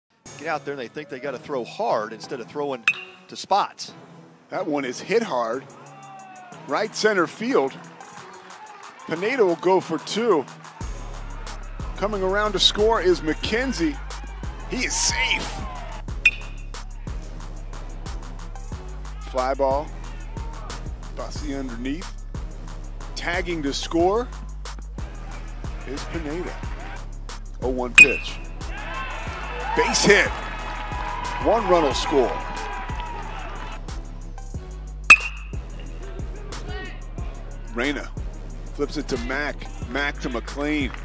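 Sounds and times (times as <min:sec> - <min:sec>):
background music with steady beat: 0:00.1 - 0:41.0
metal bat striking ball: 0:02.9 - 0:03.3, 0:28.0 - 0:28.4, 0:35.1 - 0:35.6.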